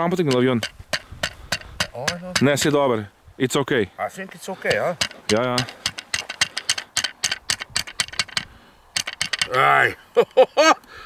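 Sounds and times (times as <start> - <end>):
small hammer tapping nail: 0.3 - 2.7, 4.7 - 9.5.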